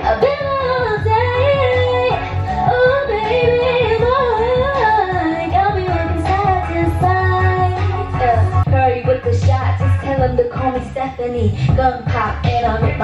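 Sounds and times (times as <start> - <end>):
pop karaoke backing track: 0.0 - 13.0
woman singing into microphone: 0.0 - 13.0.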